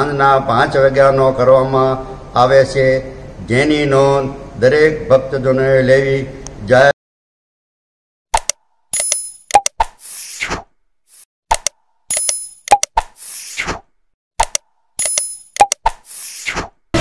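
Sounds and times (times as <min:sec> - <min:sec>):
mouse clicks and pops: 0:08.4 - 0:10.2, 0:11.5 - 0:13.7, 0:14.4 - 0:16.3.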